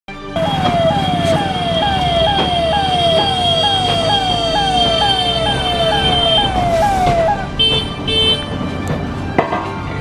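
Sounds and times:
steady high tone: 0.4s - 7.8s
ambulance siren wailing: 0.4s - 9.0s
low traffic rumble: 0.4s - 10.0s.

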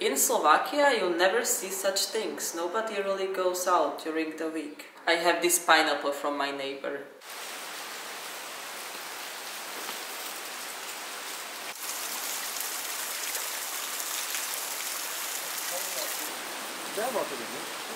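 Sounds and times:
waterfall rushing over rock: 11.7s - 17.9s.

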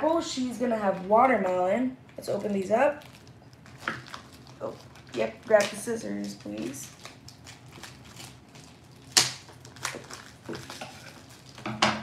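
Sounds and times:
plastic packaging crackling: 2.2s - 11.8s.

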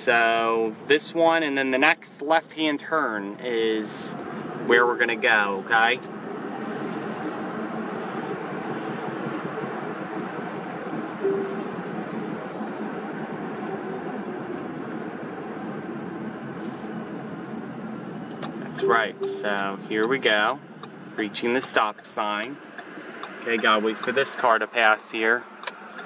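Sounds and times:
car road and tyre noise: 0.0s - 26.0s.

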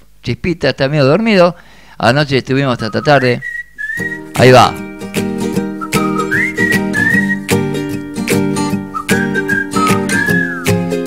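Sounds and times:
whistled melody: 2.8s - 4.4s, 5.1s - 11.0s
plucked strings: 4.2s - 11.0s
steady beat: 4.2s - 11.0s.

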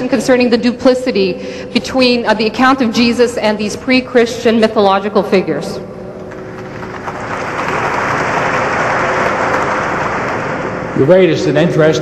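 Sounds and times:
audience applauding: 6.3s - 11.1s.

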